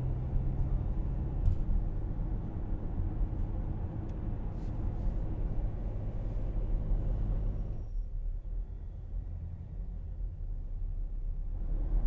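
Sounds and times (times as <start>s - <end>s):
vehicle road rumble: 0.0s - 12.0s.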